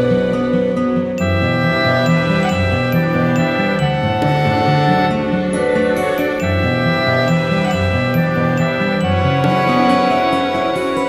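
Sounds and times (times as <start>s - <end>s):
meditative music: 0.0s - 11.0s.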